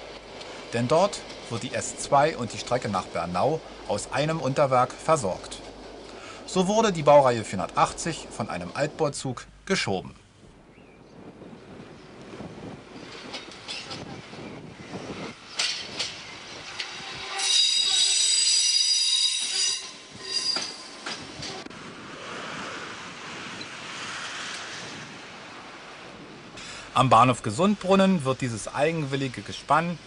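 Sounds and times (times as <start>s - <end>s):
train wheels squealing: 16.8s - 21.2s.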